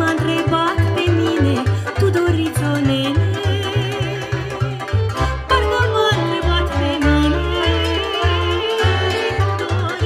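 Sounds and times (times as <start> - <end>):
accordion: 0.0 - 10.0
double bass short notes: 0.0 - 10.0
violin: 0.0 - 10.0
woman singing: 0.0 - 10.0.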